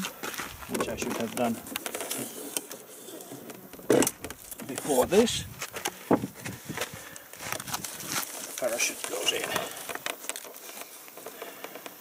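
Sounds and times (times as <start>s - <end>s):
fabric rustling and scraping: 4.3s - 11.6s.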